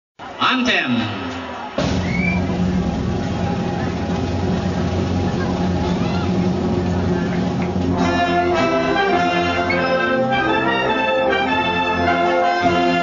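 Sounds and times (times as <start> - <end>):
crowd chatter: 0.2 - 13.0.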